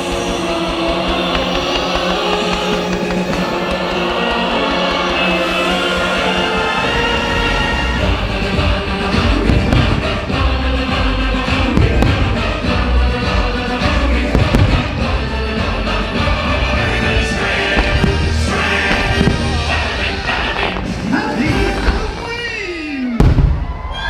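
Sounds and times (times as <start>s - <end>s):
fireworks bangs and thumps: 0.0s - 6.2s, 7.6s - 23.9s
loud soundtrack music: 0.0s - 22.4s.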